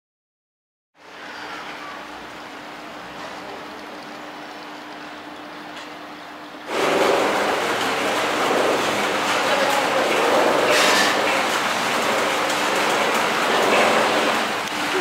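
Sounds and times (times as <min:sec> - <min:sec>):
lift machinery running: 0:01.0 - 0:15.0.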